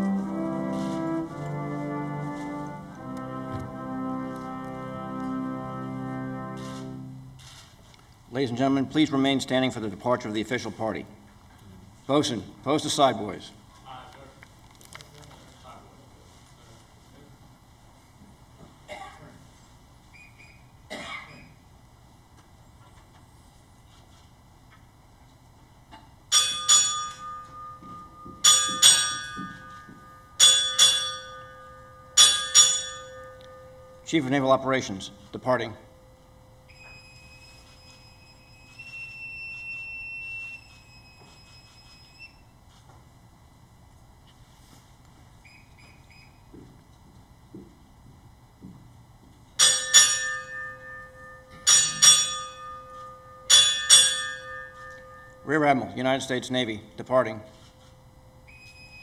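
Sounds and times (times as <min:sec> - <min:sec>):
ship's bell ringing: 0:26.3 - 0:42.5, 0:49.6 - 0:59.0.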